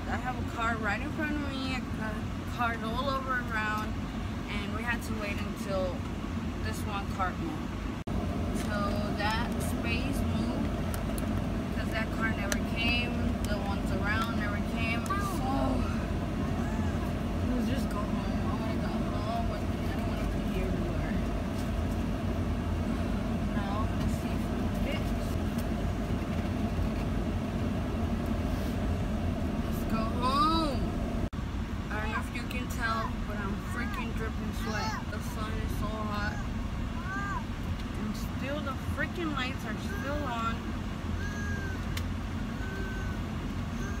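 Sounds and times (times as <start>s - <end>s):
voices: 0.0s - 7.8s, 8.5s - 21.8s, 22.8s - 27.2s, 29.6s - 31.0s, 31.9s - 44.0s.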